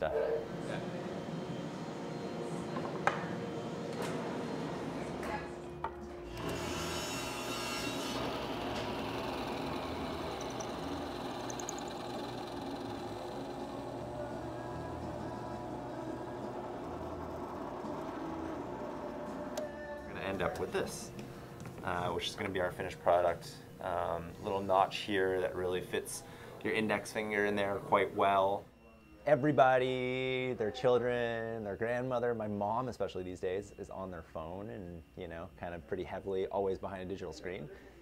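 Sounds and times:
drill press boring into wood: 6.3s - 19.6s.

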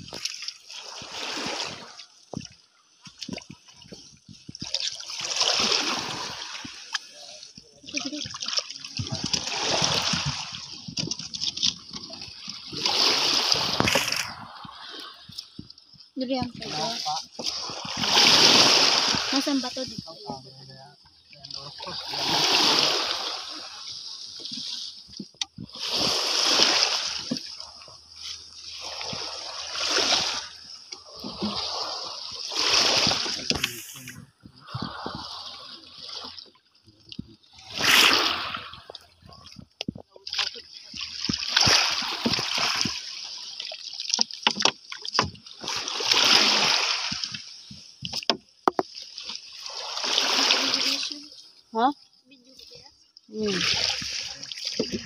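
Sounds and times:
shallow water splashing: 0.0s - 55.0s.

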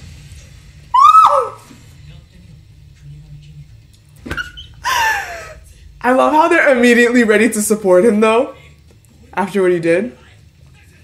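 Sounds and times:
woman laughing: 4.8s - 5.6s.

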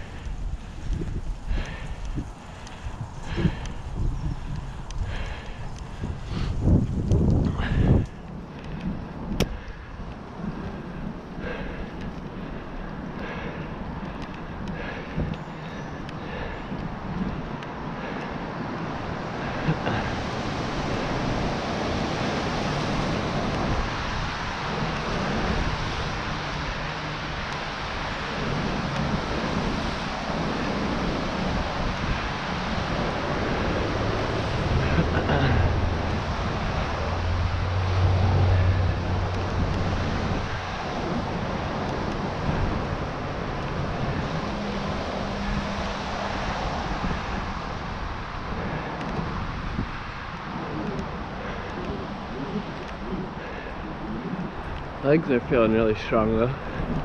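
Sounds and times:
bicycle tyre hiss on wet pavement: 0.0s - 12.6s, 18.0s - 55.4s
deep rumble: 0.0s - 18.2s, 32.9s - 45.9s
wind noise on microphone: 0.0s - 57.0s.

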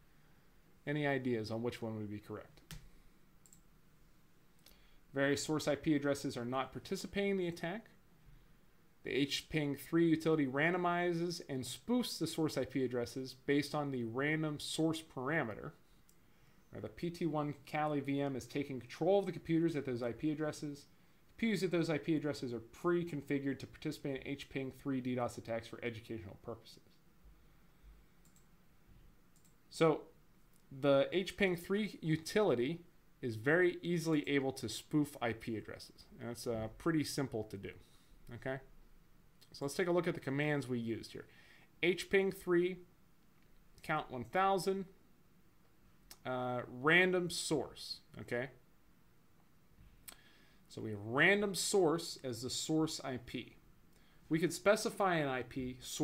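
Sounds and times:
computer mouse click: 2.6s - 3.7s, 28.2s - 28.5s
faint clicks: 28.2s - 28.5s, 29.4s - 29.6s.

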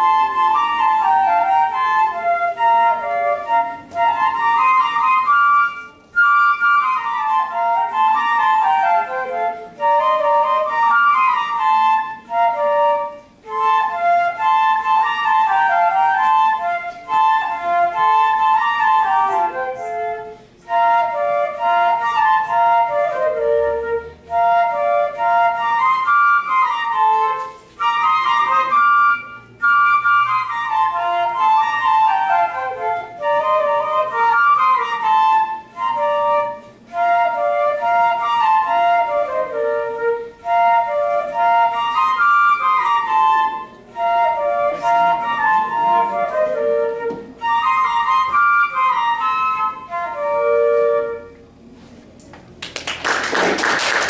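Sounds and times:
two flutes playing a march: 0.0s - 51.9s.

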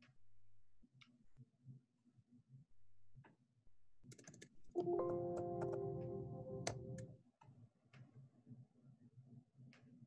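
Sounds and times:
keyboard typing clicks: 4.1s - 7.1s
electronic tone chord: 4.8s - 7.1s.

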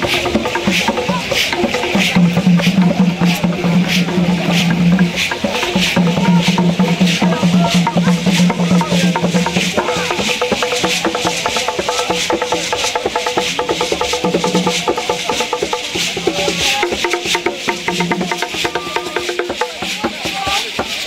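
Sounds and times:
wooden drums: 0.0s - 21.0s.

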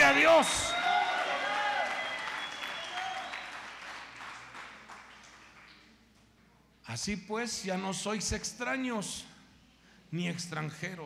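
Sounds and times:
congregation applauding: 0.0s - 6.0s.

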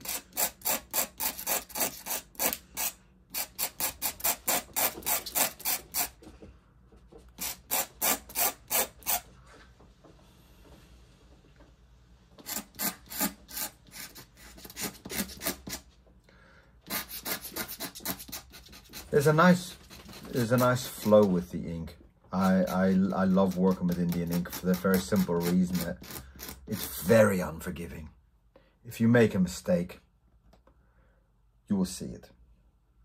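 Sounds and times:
pen nib scratching paper: 12.4s - 15.8s, 16.9s - 21.1s.

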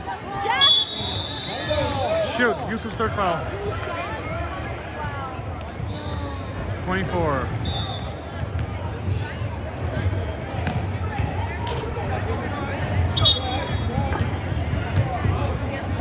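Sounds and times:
murmur of gym crowd: 0.0s - 16.0s.

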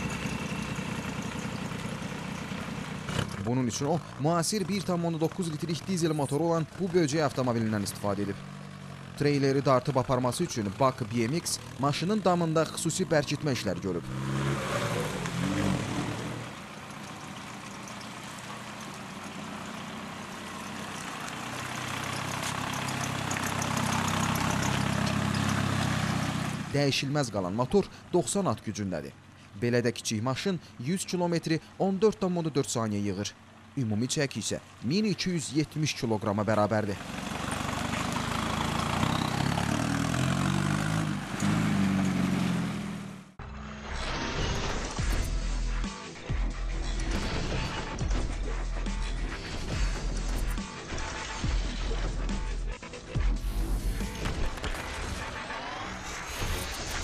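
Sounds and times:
diesel engine running under load: 0.0s - 43.9s
tyre noise on wet pavement: 13.5s - 26.8s, 36.8s - 43.3s.

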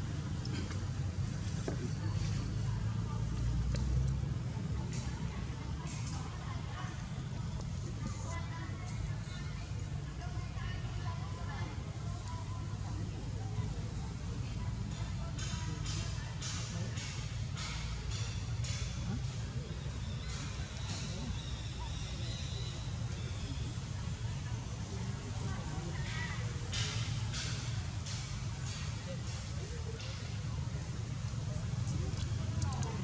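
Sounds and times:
low rumble of outdoor background: 0.0s - 33.0s.

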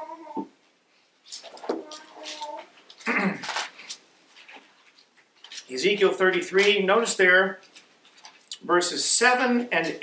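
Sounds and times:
thin pages rustling: 1.3s - 5.7s
man clearing his throat: 3.0s - 3.5s
man talking: 5.7s - 7.6s, 8.5s - 10.0s.

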